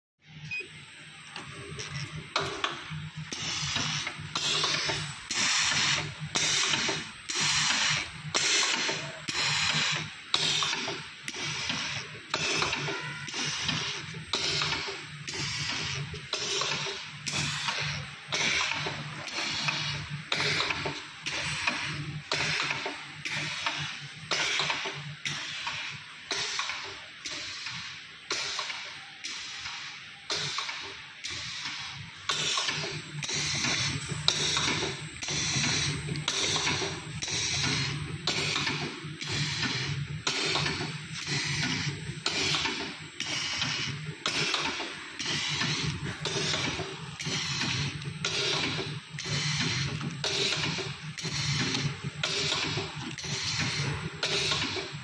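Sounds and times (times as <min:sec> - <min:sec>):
steady low machine hum: 0:32.0 - 0:54.3.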